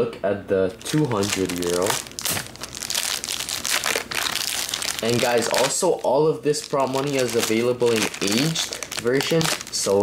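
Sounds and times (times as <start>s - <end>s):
plastic wrap tearing: 0.8s - 10.0s
plastic wrapping crinkling: 0.8s - 10.0s.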